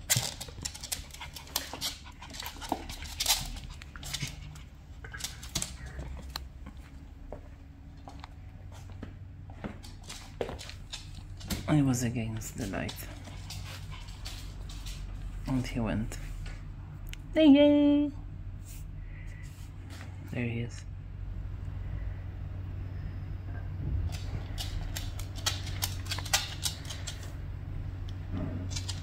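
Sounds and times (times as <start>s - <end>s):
dogs panting: 0.0s - 6.4s, 12.5s - 15.2s
dogs scuffling: 0.0s - 16.6s, 24.1s - 27.4s, 28.5s - 29.0s.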